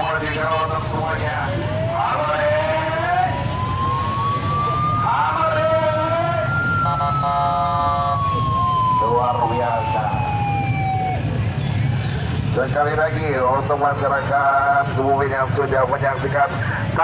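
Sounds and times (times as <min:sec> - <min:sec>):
motorcycle engines running: 0:00.0 - 0:17.0
police siren wailing: 0:00.0 - 0:17.0
horn blast: 0:06.8 - 0:08.2.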